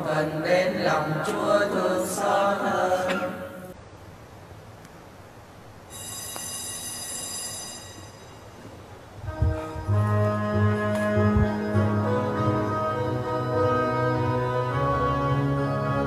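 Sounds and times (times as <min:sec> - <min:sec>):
congregation praying aloud: 0:00.0 - 0:03.7
high steady ringing tone: 0:05.8 - 0:10.1.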